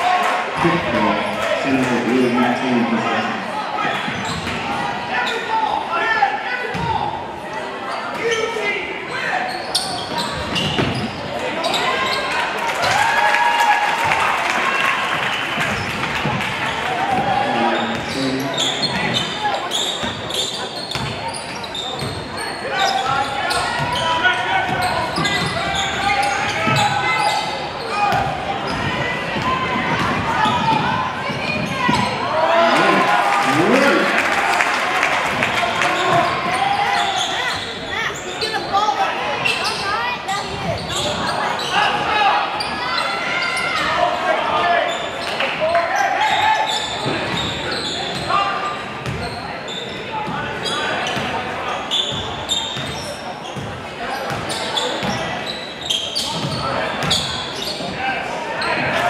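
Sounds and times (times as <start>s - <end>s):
babble of voices: 15.6s - 59.0s.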